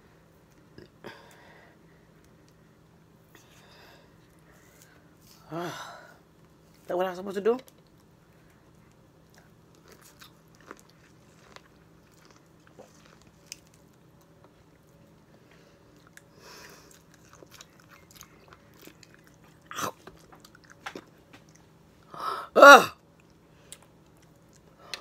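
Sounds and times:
person chewing lemon wedges: 0:07.6 - 0:22.1.

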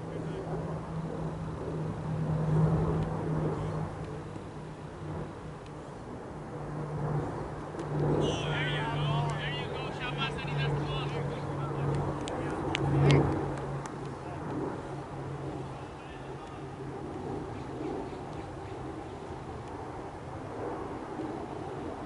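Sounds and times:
steady low hum: 0:00.0 - 0:22.0
faint distant voices: 0:08.2 - 0:18.3.

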